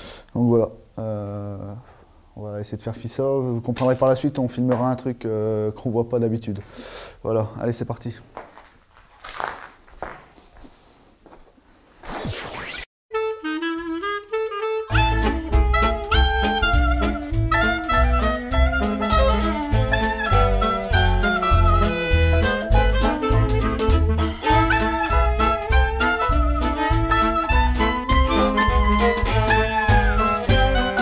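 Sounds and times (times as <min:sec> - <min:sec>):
swing tune with horns: 0:13.1 - 0:31.0.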